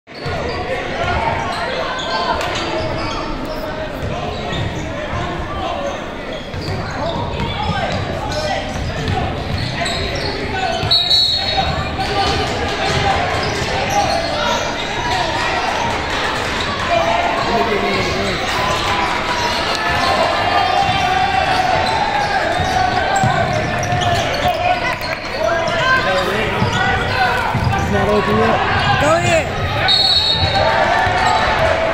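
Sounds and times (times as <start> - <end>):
indistinct shouts and chatter: 0.1 - 31.9
basketball bouncing on court: 6.5 - 14.2, 20.8 - 24.6, 26.5 - 31.4.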